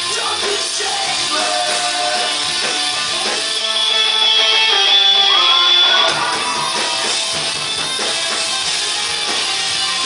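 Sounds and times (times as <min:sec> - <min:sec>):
live rock band playing: 0:00.0 - 0:10.0
strummed guitar: 0:00.0 - 0:10.0.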